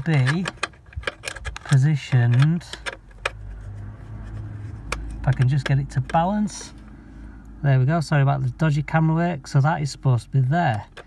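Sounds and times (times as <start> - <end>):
low handling rumble: 0.0 - 9.4.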